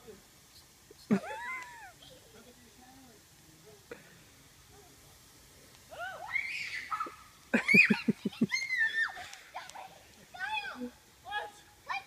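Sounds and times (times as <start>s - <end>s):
child's high-pitched squeal: 5.9s - 9.8s.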